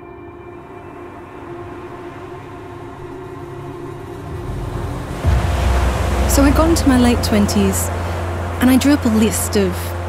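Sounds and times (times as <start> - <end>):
low rushing noise: 1.6 - 10.0.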